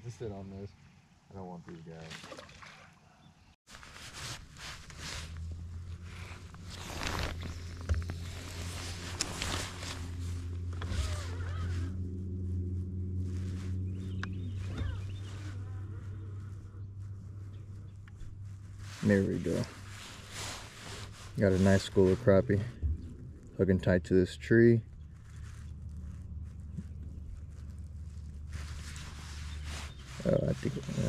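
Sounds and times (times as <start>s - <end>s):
electric trolling motor humming: 7.5s - 18.2s.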